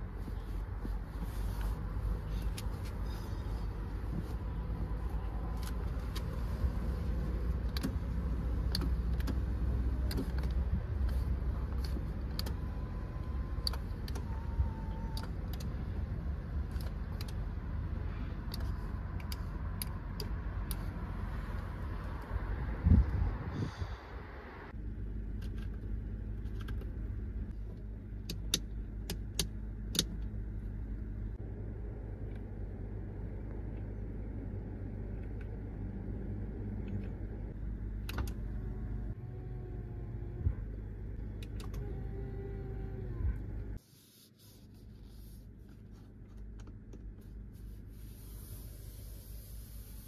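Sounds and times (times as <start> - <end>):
faint hiss: 47.6 - 50.0.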